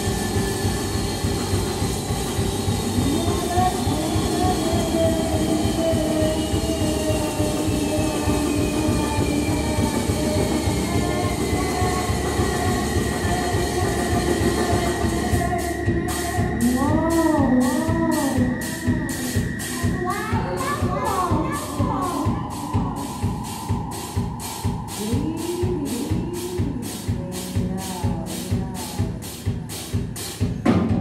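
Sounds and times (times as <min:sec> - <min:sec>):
rumbling synthesizer noise drone: 0:00.0 - 0:30.2
high whine falling in pitch: 0:00.0 - 0:31.0.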